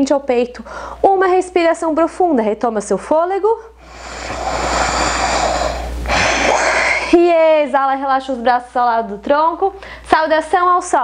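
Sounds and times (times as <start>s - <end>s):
woman breathing deeply: 0.7s - 1.0s, 3.8s - 7.2s.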